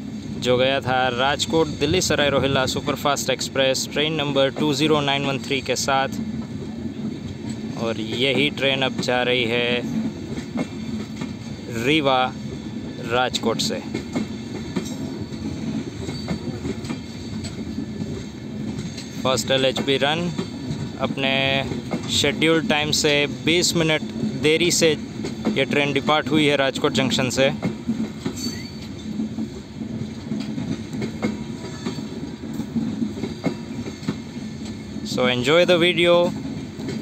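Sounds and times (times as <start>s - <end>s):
train wheels rumbling on rail: 0.0s - 37.0s.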